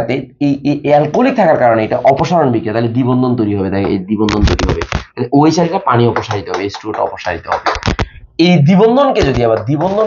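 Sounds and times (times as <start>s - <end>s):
man talking quickly: 0.0s - 10.0s.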